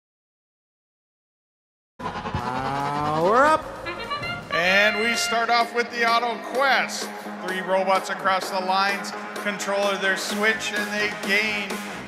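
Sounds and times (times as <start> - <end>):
rising electronic tone: 2.0 - 5.4
arena hall noise: 2.1 - 12.0.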